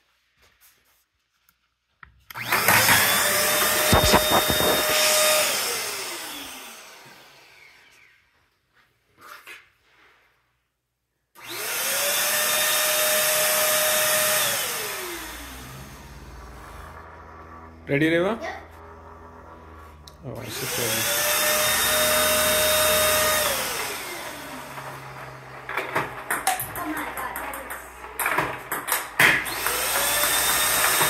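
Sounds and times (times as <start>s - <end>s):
electric pump motor whining: 2.3s - 8.2s, 11.4s - 26.6s, 28.9s - 31.0s
balls knocking in pipe: 25.6s - 31.0s.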